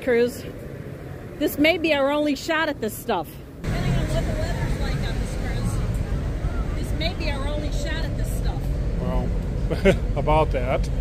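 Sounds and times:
steady low rumble: 0:00.0 - 0:11.0
faint voices talking: 0:03.6 - 0:09.3.

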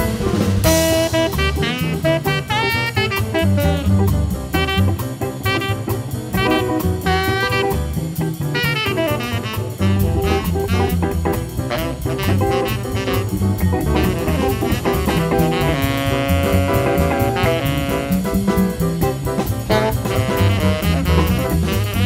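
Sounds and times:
double bass: 0:00.0 - 0:22.0
drum kit swing beat on cymbals: 0:00.0 - 0:22.0
saxophone: 0:00.0 - 0:22.0.

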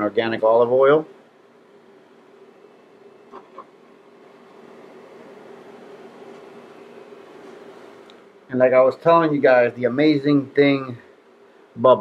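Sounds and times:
induction cooktop hum: 0:00.0 - 0:12.0.

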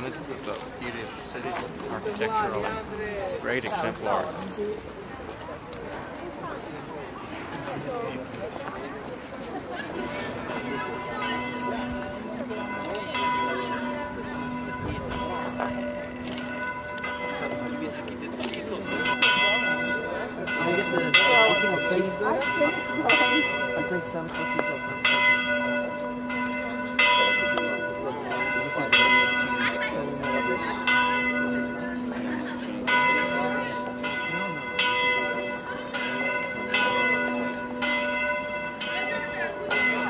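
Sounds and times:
church bell ringing: 0:09.9 - 0:40.0.

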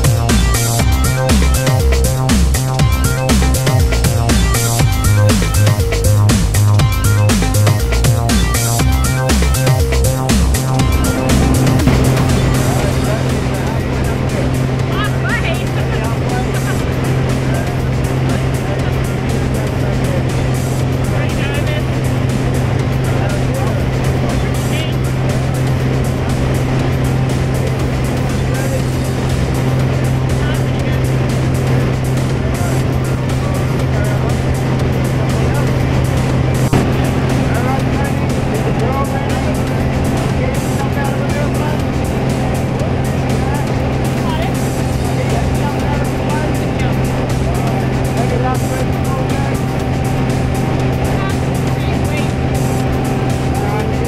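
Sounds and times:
light aircraft engine drone: 0:00.0 - 0:54.0
faint voices talking: 0:08.6 - 0:54.0.

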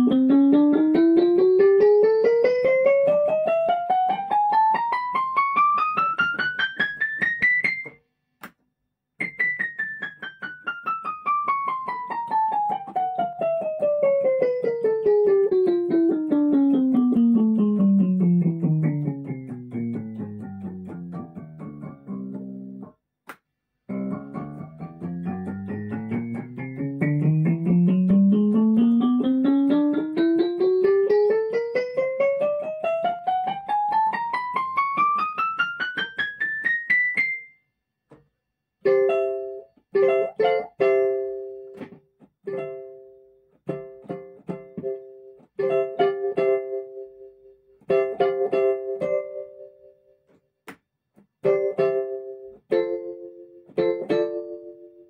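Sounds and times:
detached keyboard chords: 0:00.0 - 0:08.0, 0:09.2 - 0:22.9, 0:23.9 - 0:37.5, 0:38.8 - 0:49.9, 0:51.4 - 0:55.0.

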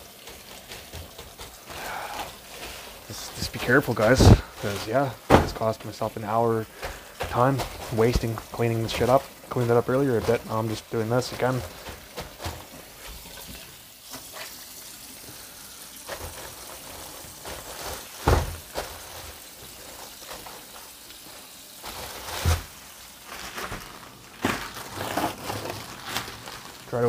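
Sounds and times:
rubbing and scraping: 0:16.1 - 0:26.5.

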